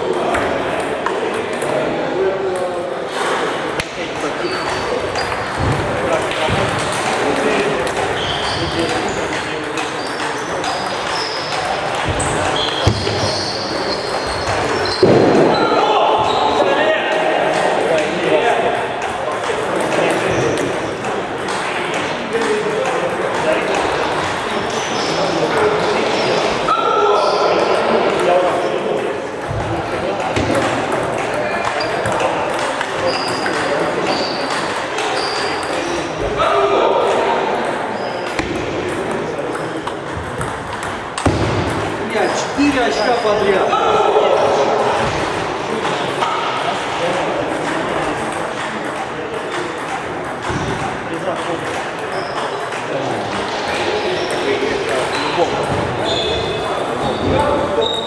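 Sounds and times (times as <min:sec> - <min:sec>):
murmur of voices: 0:00.0 - 0:58.0
table tennis balls clicking: 0:17.5 - 0:24.6, 0:27.7 - 0:35.8, 0:37.1 - 0:43.1, 0:46.7 - 0:56.0.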